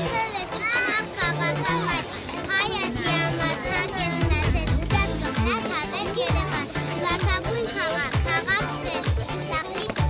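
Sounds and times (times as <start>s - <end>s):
background music with bass: 0.0s - 10.0s
children chattering and calling: 0.0s - 10.0s.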